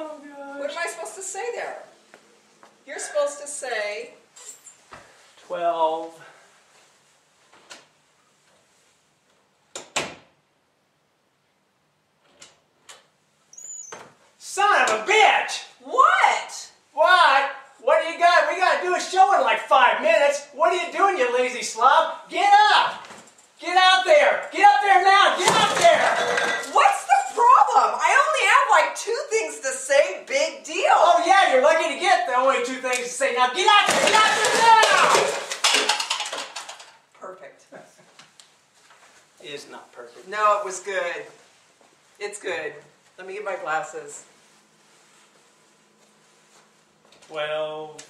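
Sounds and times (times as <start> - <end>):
noisy clatter: 33.9 - 37.0.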